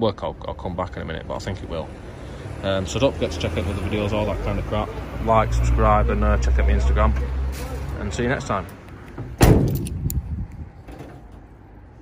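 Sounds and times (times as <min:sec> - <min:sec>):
van central locking clunking: 0:09.1 - 0:10.1.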